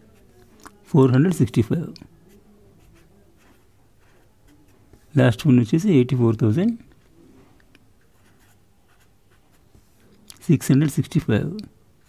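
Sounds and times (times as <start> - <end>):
pen writing on paper: 2.3 - 5.1, 8.0 - 10.1.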